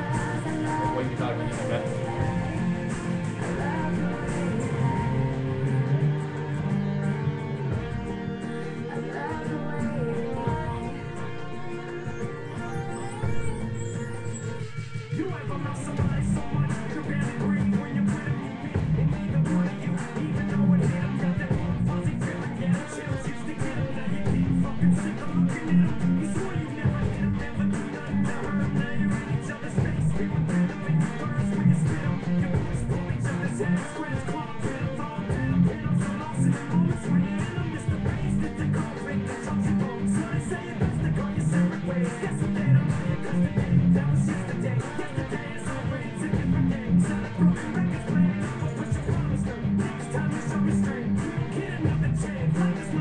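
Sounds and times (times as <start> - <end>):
guitar strumming: 0.0 - 53.0.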